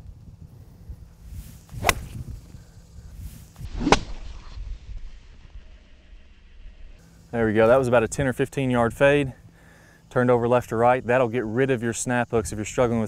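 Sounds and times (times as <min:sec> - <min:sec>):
golf club striking ball: 0:01.7 - 0:02.3.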